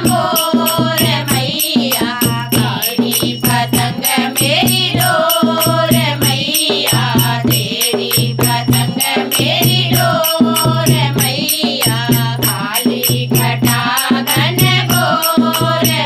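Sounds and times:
dholak drum: 0.0 - 16.0
women singing together: 0.0 - 16.0.

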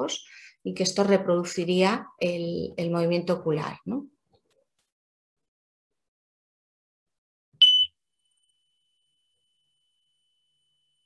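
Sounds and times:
high electronic beep: 7.6 - 7.9.

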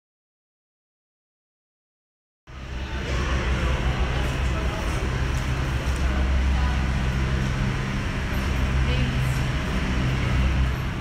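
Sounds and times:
faint indistinct voices: 2.5 - 11.0
loud low mechanical drone: 2.5 - 11.0.

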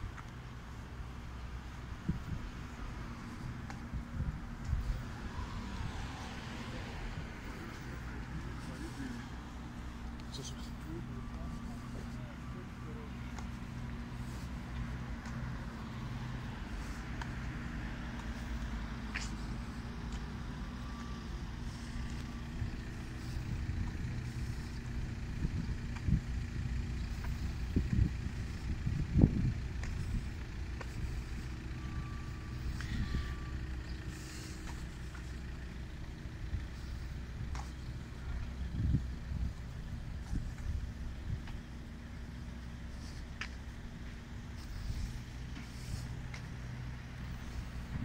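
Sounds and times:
road traffic engine rumble: 0.0 - 48.0.

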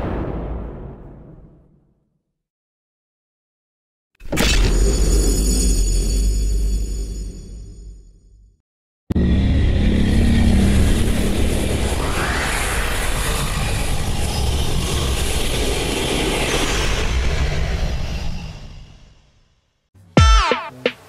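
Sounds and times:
intro music: 20.2 - 21.0.

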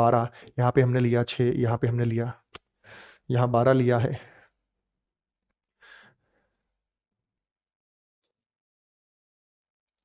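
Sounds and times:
man speaking: 0.0 - 2.4, 3.3 - 4.3
faint short breath: 2.8 - 3.2, 5.8 - 6.7.

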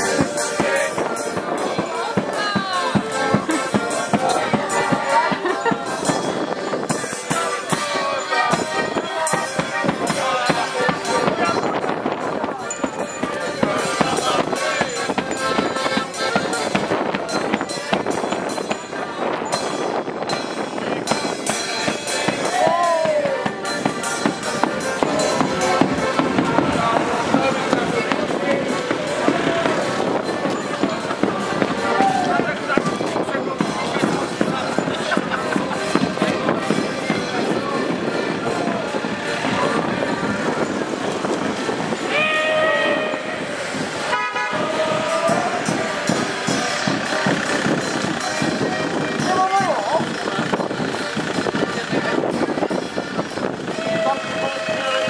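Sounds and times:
drumming and clattering: 0.0 - 42.2, 43.6 - 55.0
voices calling out: 0.0 - 55.0
horn-like toot: 42.1 - 45.8, 53.7 - 55.0.

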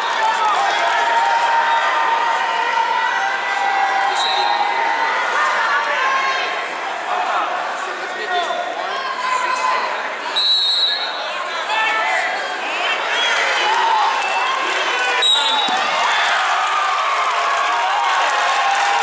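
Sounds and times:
coaches and spectators shouting: 0.0 - 19.0
whistle blowing: 10.4 - 11.2, 15.2 - 15.8.

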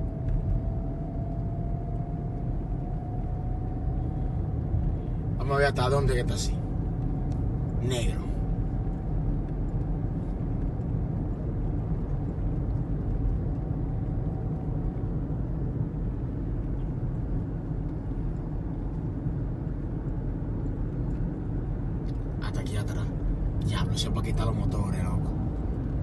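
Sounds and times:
car cabin road and engine rumble: 0.0 - 26.0
faint whine: 0.0 - 26.0.

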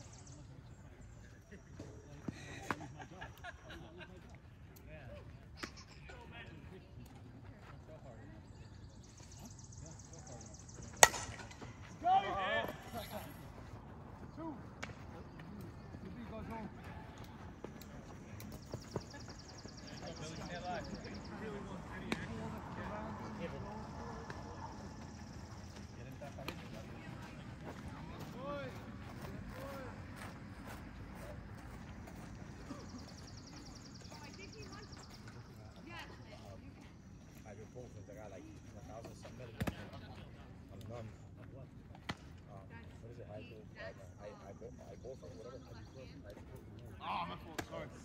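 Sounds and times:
bat striking ball: 10.9 - 11.8
players shouting: 11.0 - 13.2, 19.8 - 25.3.

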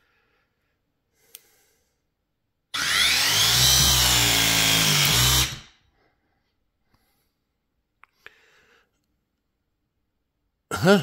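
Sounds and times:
press tool motor running: 2.8 - 5.7.

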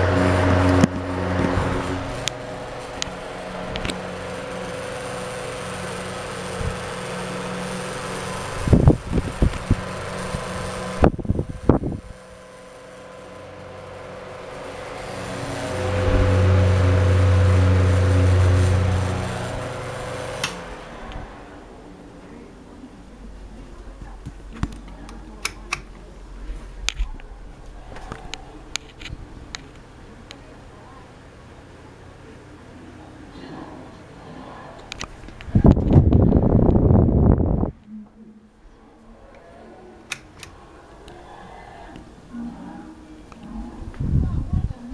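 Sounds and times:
electric fans humming: 0.0 - 44.9.

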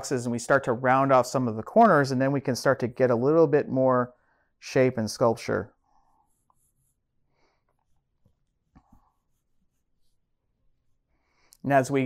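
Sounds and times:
pencil strokes on paper: 5.7 - 11.3.

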